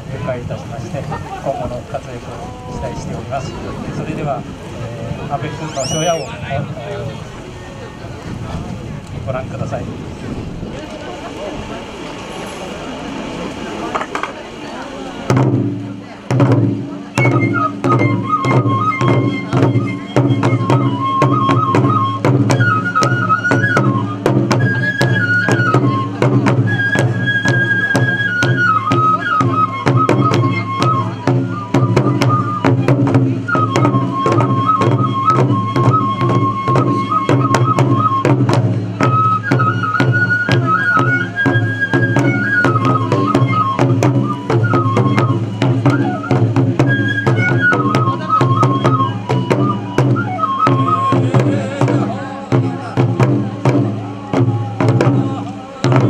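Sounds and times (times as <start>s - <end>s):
high transverse flute melody: 5.5s - 6.6s, 17.0s - 56.0s.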